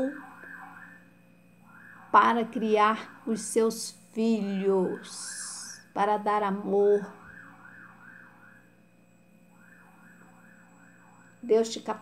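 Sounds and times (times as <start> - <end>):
faint electronic siren: 0.0 - 12.0.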